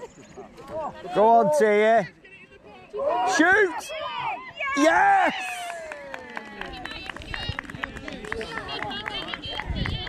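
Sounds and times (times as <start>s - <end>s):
people shouting and cheering: 0.6s - 7.5s.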